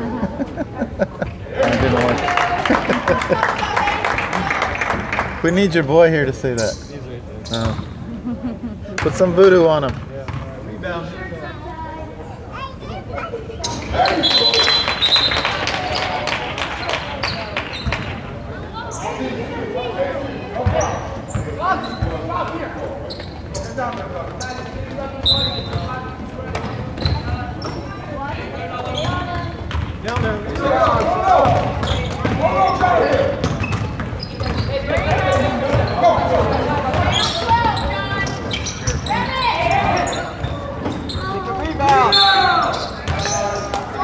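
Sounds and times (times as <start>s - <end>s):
basketball bouncing on hardwood floor: 29.7s - 29.9s.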